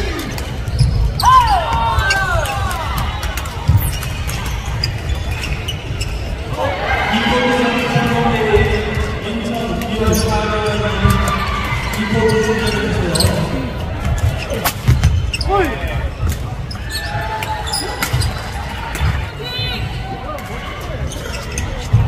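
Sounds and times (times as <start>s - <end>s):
voices in a hall: 0.0s - 22.0s
shoes squeaking on floor: 0.2s - 6.5s, 7.8s - 20.0s, 20.6s - 22.0s.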